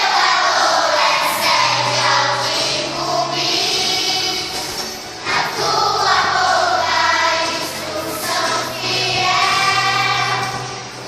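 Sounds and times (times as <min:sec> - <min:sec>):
young children singing: 0:00.0 - 0:11.0.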